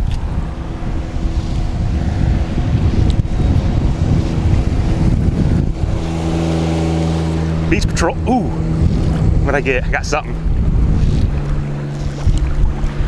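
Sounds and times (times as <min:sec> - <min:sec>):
motor droning: 0:00.0 - 0:13.0
wind buffeting microphone: 0:00.0 - 0:13.0.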